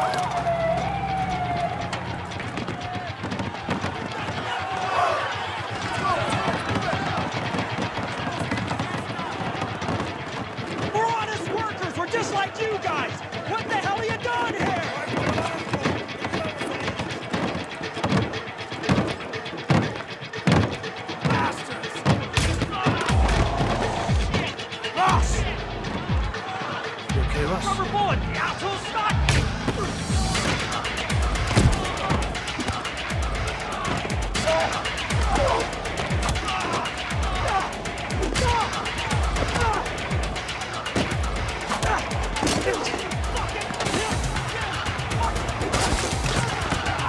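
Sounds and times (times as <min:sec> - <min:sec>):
police siren wailing: 0:00.0 - 0:03.3
crowd noise: 0:00.0 - 0:47.0.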